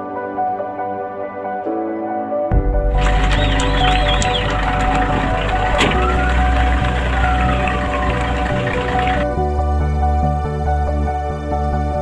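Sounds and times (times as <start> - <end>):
background music: 0.0 - 12.0
fire trucks driving: 3.0 - 9.2.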